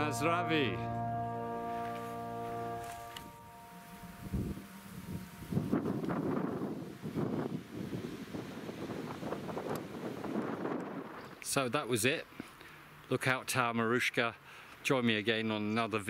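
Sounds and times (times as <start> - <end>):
background music: 0.0 - 7.1
wind buffeting microphone: 4.2 - 11.4.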